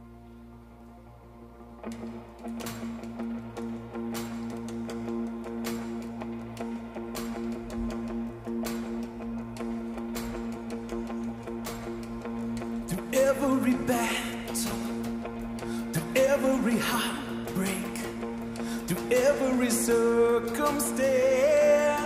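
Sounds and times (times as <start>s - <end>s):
guitars strumming: 1.8s - 22.0s.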